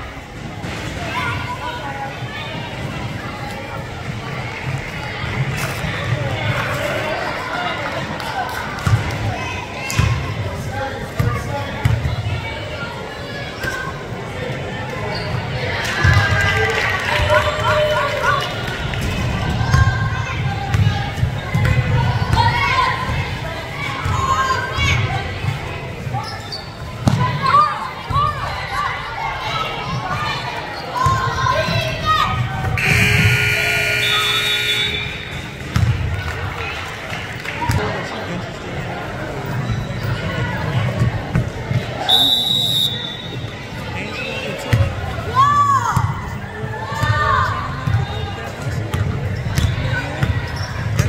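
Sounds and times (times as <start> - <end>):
voices of players and spectators: 0.0 - 51.0.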